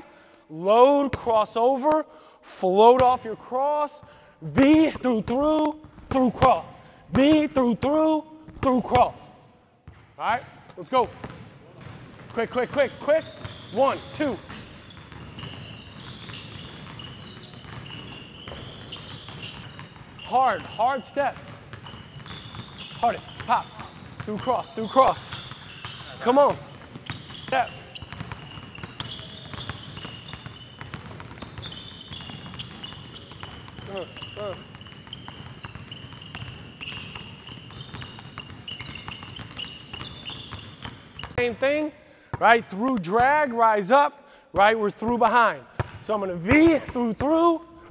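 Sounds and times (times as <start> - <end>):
basketballs bouncing on hardwood: 4.5 - 9.2, 9.8 - 43.5, 44.6 - 47.9
sneakers squeaking on wood: 11.2 - 42.6.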